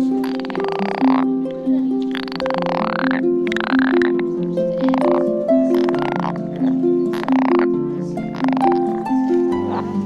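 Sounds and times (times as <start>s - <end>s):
frog calling: 0.0s - 10.0s
plucked harp music: 0.0s - 10.0s.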